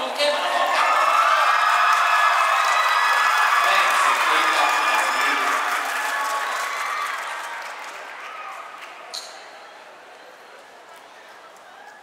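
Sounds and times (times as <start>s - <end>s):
applause in echoing hall: 0.0s - 9.1s.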